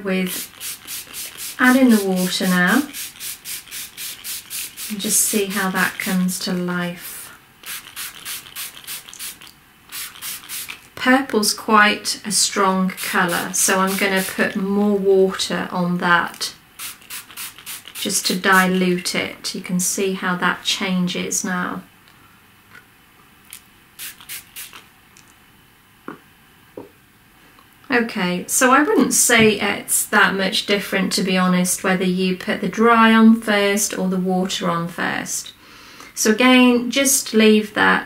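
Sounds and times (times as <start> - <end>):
spray bottle spritzing: 0.2 - 6.2, 7.6 - 10.9, 13.0 - 14.4, 16.8 - 18.6, 24.0 - 24.9.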